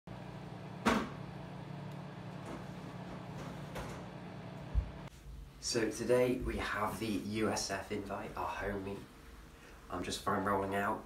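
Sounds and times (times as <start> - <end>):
microwave oven humming: 0.1 - 5.1.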